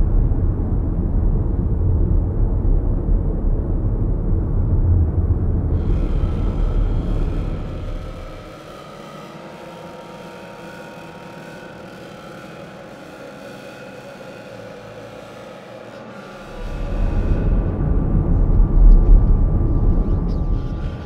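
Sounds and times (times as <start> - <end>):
deep rumbling drone: 0.0 - 21.0
sustained synth pad: 0.0 - 21.0.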